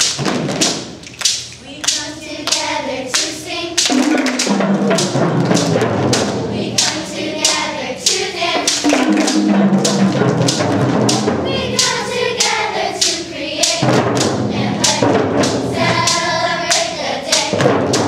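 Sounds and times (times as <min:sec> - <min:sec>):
hand claps on a steady beat: 0:00.0 - 0:18.0
children's choir singing: 0:01.7 - 0:18.0.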